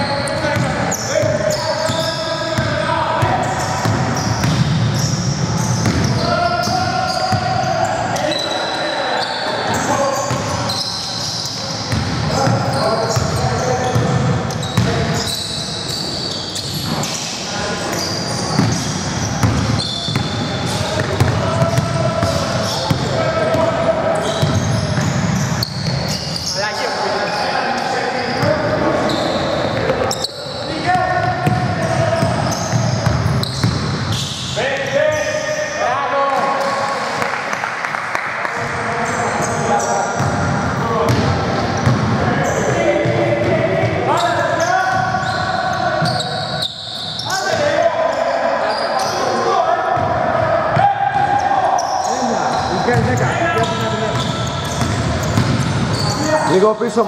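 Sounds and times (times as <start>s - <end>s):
players calling out: 0.0s - 37.0s, 38.7s - 57.0s.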